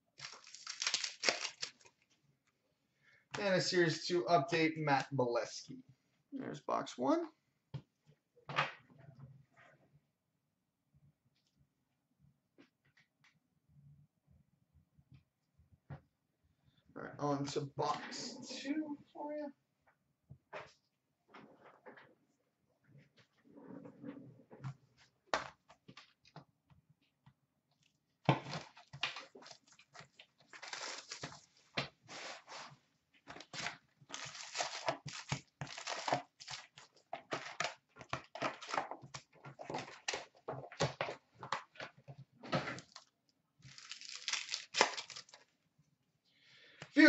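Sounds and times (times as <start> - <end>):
foil packs tearing and crinkling: 0.2 - 2.0, 28.6 - 32.4, 33.4 - 39.2, 43.6 - 45.4.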